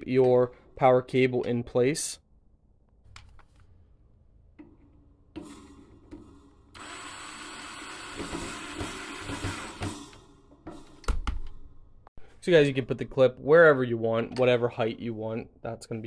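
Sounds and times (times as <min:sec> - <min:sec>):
power drill driving screw: 0:06.7 - 0:09.9.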